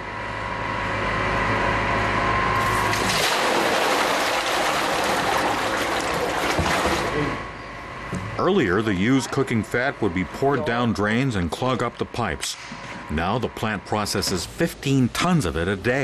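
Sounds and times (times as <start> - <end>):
machinery hum: 0.0 - 16.0.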